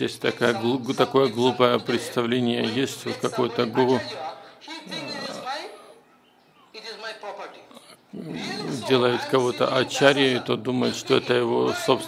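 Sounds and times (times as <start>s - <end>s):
man speaking: 0.0s - 6.0s, 7.4s - 12.0s.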